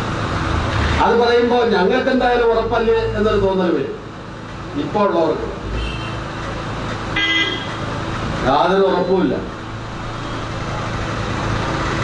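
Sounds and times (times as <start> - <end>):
road traffic noise: 0.0 - 12.0
vehicle horn honk: 5.8 - 6.3, 7.2 - 7.8.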